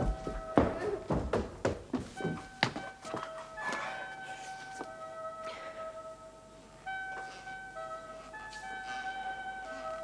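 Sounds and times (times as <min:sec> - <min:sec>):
footsteps running on stairs: 0:00.0 - 0:03.2
music of sustained tones: 0:02.1 - 0:10.0.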